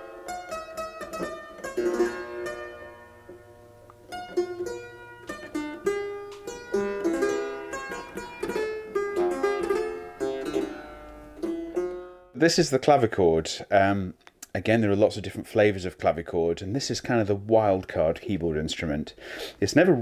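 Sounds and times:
clavichord playing: 0.0s - 12.6s.

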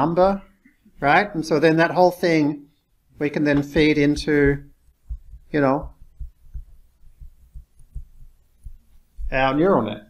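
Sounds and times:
stylus knocking on tablet screen: 3.5s - 9.4s.

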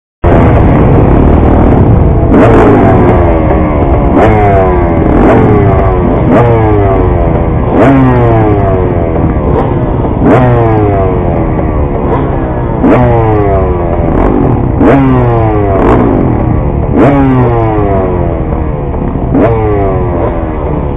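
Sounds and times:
motorbike engines revving: 0.2s - 20.9s.

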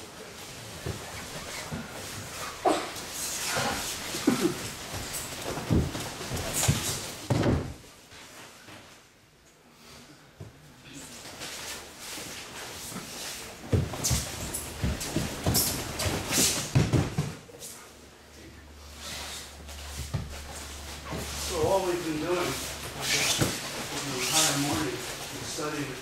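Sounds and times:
thuds of falls on a mat: 3.6s - 7.8s, 13.6s - 17.4s.

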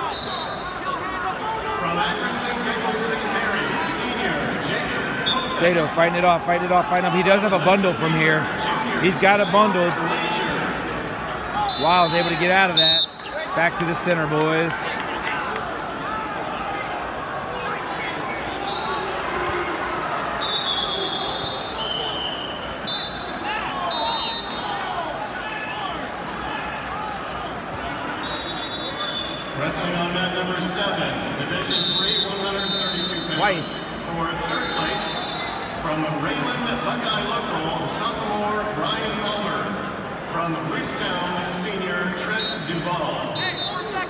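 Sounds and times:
crowd din in echoing arena: 0.0s - 44.0s.

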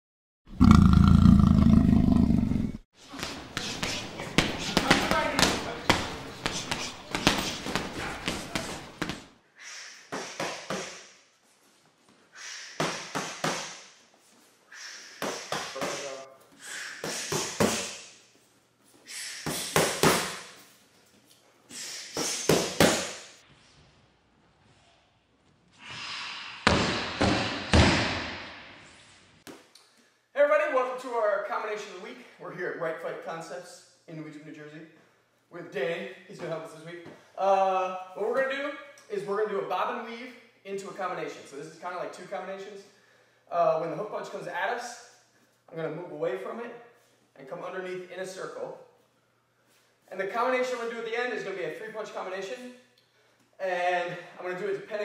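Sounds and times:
loud roar: 0.5s - 2.8s
punches hitting focus mitts: 3.1s - 9.3s.

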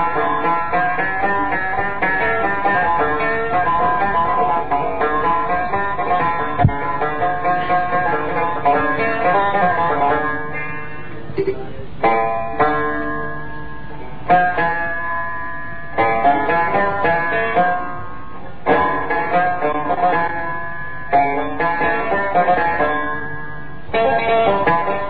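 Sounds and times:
plucked string instruments: 0.0s - 25.0s.

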